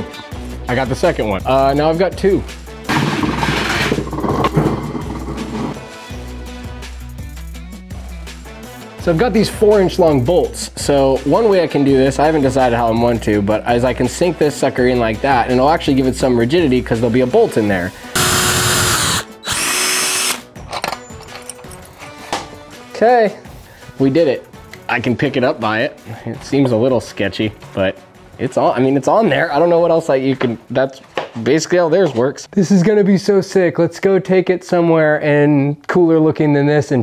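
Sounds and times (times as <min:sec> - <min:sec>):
background music: 0:00.0 - 0:37.0
cordless drill running: 0:18.2 - 0:20.4.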